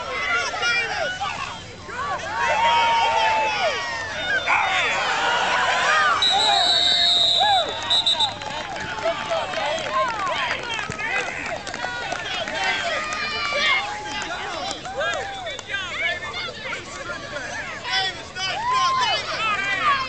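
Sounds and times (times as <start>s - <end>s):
crowd shouting: 0.0s - 20.0s
referee's whistle blowing: 6.0s - 8.5s.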